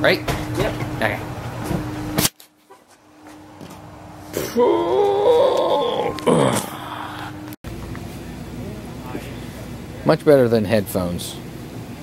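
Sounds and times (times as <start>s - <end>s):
faint steady hum: 3.6s - 12.0s.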